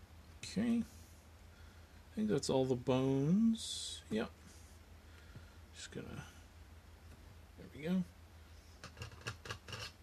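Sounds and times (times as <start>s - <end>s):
faint scratchy clicks and rubs: 8.7s - 10.0s.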